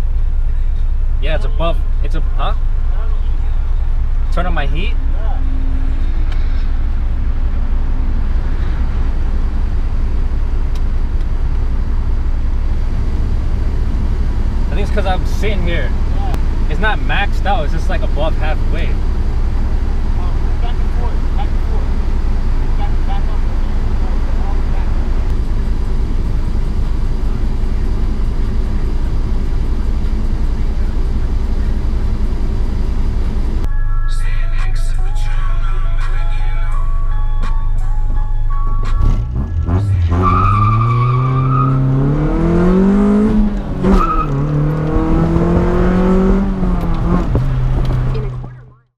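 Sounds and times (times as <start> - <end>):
car engine idling and accelerating: 0.0 - 48.9.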